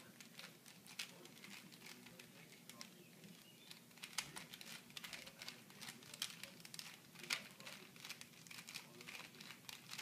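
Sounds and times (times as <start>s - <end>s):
puzzle cube plastic clicks: 0.1s - 3.0s, 3.7s - 10.0s.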